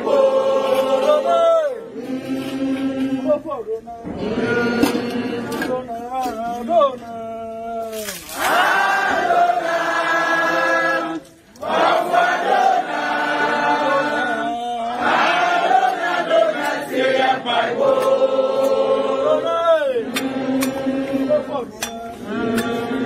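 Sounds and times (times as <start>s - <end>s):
group of voices chanting: 0.0s - 3.4s, 8.4s - 23.0s.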